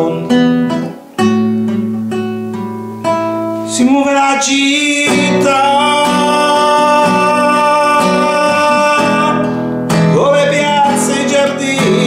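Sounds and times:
man singing: 0:00.0 - 0:01.0, 0:03.6 - 0:12.0
strummed classical guitar: 0:00.0 - 0:12.0.

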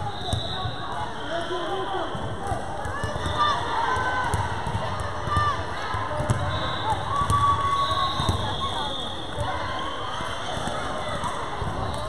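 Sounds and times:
echoing gymnasium chatter: 0:00.0 - 0:12.0.

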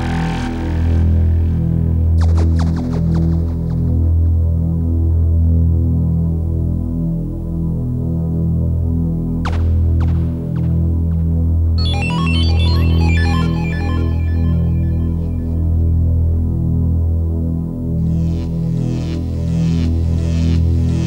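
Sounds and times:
pulsing synthesizer bass drone: 0:11.4 - 0:21.0.

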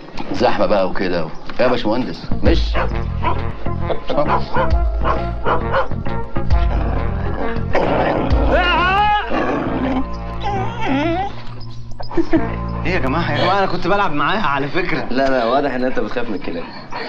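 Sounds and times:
background music: 0:00.0 - 0:17.0
dog barking: 0:01.6 - 0:06.0
dog whining: 0:06.6 - 0:13.5.

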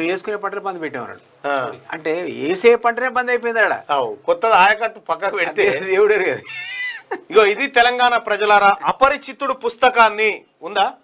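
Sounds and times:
man talking: 0:00.0 - 0:06.5, 0:07.3 - 0:11.0
men laughing: 0:06.3 - 0:07.9.

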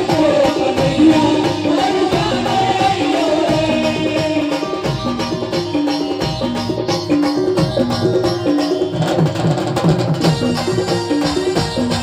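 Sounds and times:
person singing: 0:00.0 - 0:05.1
hand drums: 0:00.0 - 0:12.0.

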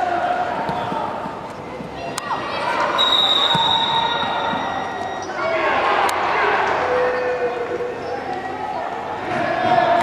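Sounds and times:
players and spectators shouting: 0:00.0 - 0:10.0.

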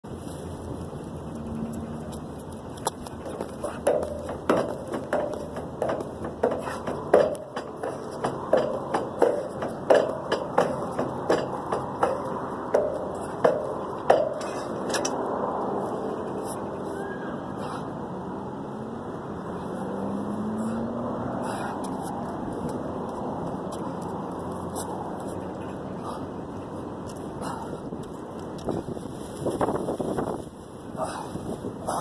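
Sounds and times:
jumping impacts on rubber track: 0:02.2 - 0:15.2.

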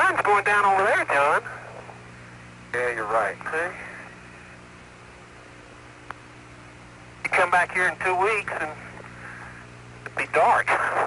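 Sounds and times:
radio hiss: 0:00.0 - 0:04.8, 0:07.2 - 0:11.0
faint low hum: 0:00.0 - 0:11.0.

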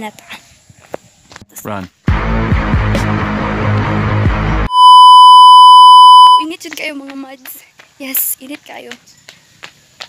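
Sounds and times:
loud electronic beep tone: 0:04.6 - 0:06.5.

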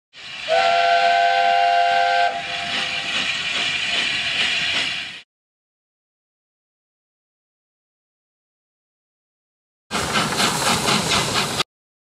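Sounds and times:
hiss of steam: 0:00.2 - 0:05.2, 0:09.9 - 0:11.6
steam locomotive chime whistle: 0:00.4 - 0:03.1.

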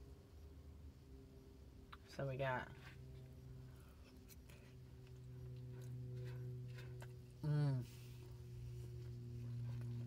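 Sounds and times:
steady low hum: 0:00.0 - 0:10.0
quiet chewing: 0:03.0 - 0:10.0.

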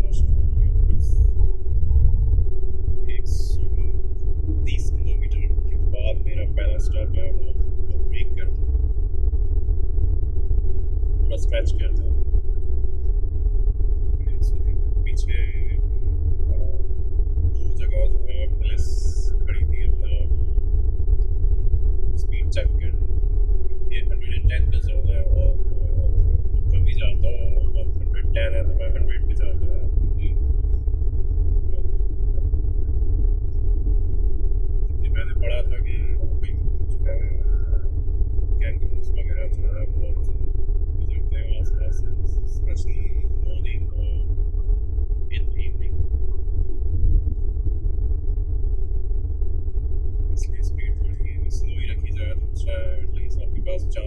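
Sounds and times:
faint indistinct talking: 0:00.0 - 0:01.4, 0:03.1 - 0:08.5, 0:11.3 - 0:12.2, 0:14.2 - 0:16.8, 0:17.6 - 0:20.4, 0:22.2 - 0:23.0, 0:23.7 - 0:30.4, 0:35.0 - 0:37.9, 0:38.6 - 0:40.4, 0:41.0 - 0:44.3, 0:45.3 - 0:46.2, 0:50.4 - 0:54.0
car cabin road and engine rumble: 0:11.3 - 0:12.1.

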